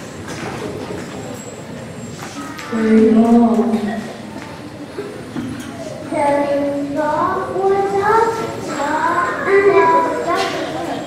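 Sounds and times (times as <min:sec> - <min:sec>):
child singing: 0:06.0 - 0:11.0.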